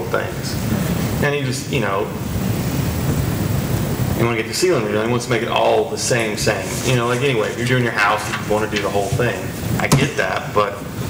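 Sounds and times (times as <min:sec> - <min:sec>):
speech: 0:00.0 - 0:00.6, 0:01.2 - 0:02.2, 0:04.2 - 0:10.9.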